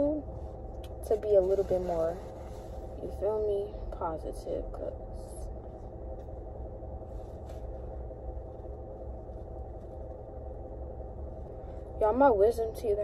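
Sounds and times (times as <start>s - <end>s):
car cabin rumble and hum: 0.0s - 13.0s.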